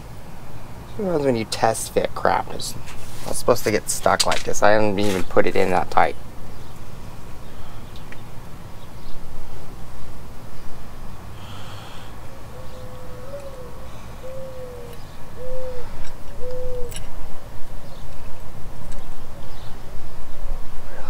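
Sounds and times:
bird hooting: 11.3s - 17.0s.

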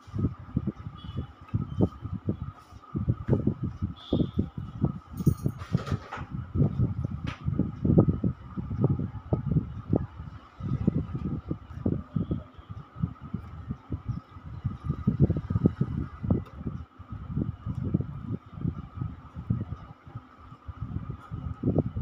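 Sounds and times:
faint hum: 6.3s - 22.0s.

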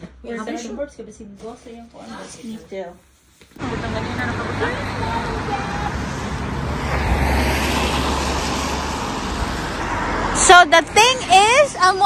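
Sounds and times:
vehicle passing on wet road: 3.6s - 11.6s.

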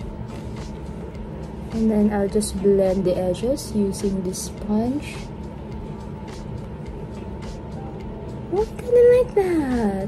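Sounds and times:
low background hum: 0.0s - 10.0s
woman speaking: 1.7s - 5.3s, 8.5s - 10.0s.

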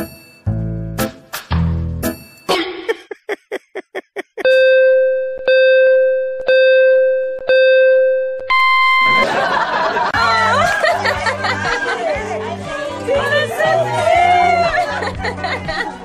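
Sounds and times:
electronic countdown beeps: 4.4s - 9.2s.

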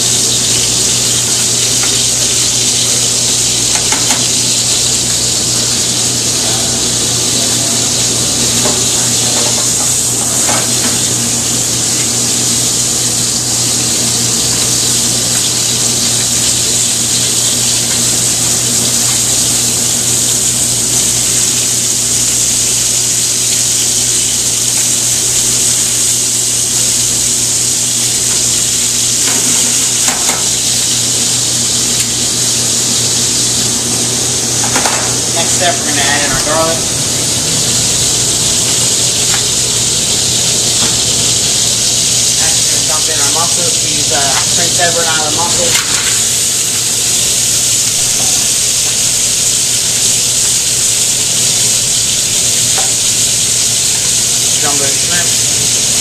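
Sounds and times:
scallops sizzling in hot oil: 0.0s - 56.0s.

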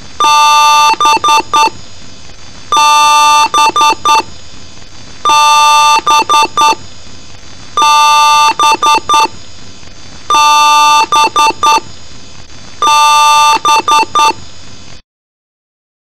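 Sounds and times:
steady hiss: 0.0s - 15.0s
computer speaker beeps: 0.2s - 1.8s, 2.7s - 4.3s, 5.3s - 6.8s, 7.8s - 9.3s, 10.3s - 11.8s, 12.8s - 14.4s.

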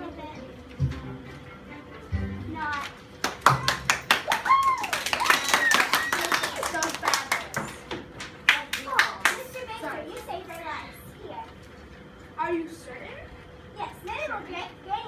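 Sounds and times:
children clapping: 3.2s - 10.3s.

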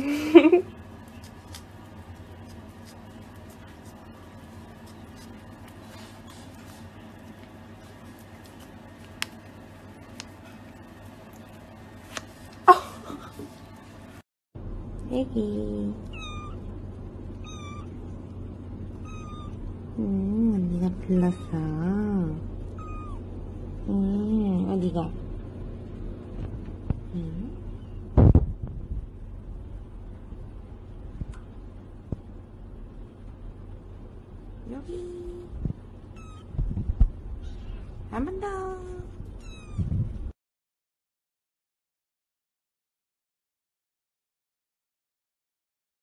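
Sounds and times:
kitten mewing: 16.1s - 16.6s, 17.4s - 17.9s, 19.0s - 19.6s, 22.7s - 23.3s, 39.4s - 39.9s.

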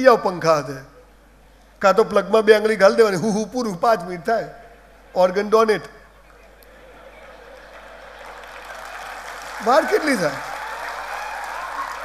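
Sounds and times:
audience applause: 6.2s - 12.0s.

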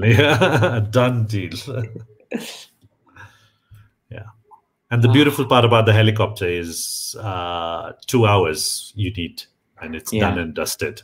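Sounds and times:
man laughing: 0.0s - 2.0s, 10.2s - 10.4s.

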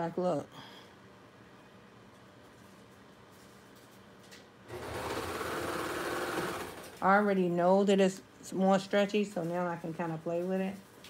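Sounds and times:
serger stitching: 4.7s - 7.0s.

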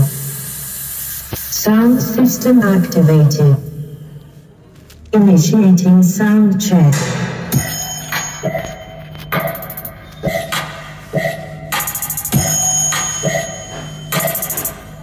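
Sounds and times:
electronic dance music: 6.9s - 15.0s.

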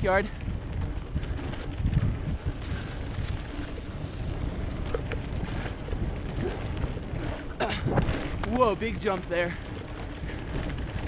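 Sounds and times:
bike rattling over bumpy trail: 0.0s - 11.0s
wind buffeting microphone: 0.0s - 11.0s.

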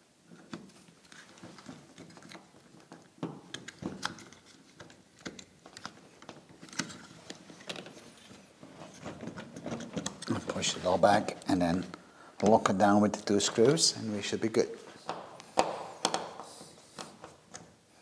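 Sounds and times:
cables and plastic clicking and scraping: 0.3s - 13.8s.

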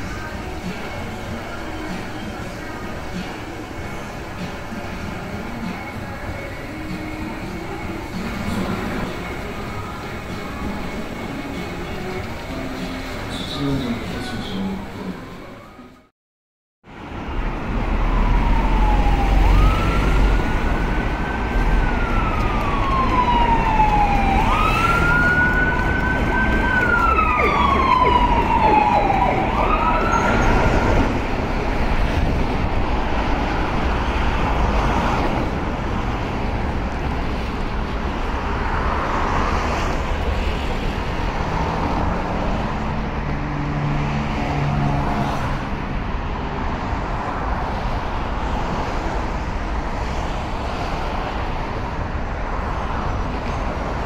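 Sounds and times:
heavy road traffic: 0.0s - 16.1s, 16.8s - 54.0s
siren wailing: 17.9s - 31.3s.

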